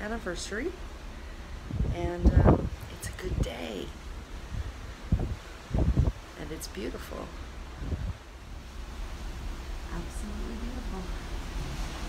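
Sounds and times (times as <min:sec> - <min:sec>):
open sea rushing: 0:00.0 - 0:12.0
wind buffeting microphone: 0:00.0 - 0:12.0.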